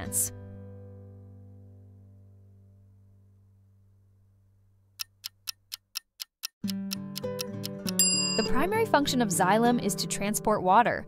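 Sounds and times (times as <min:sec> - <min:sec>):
timer ticking: 0:05.0 - 0:08.8.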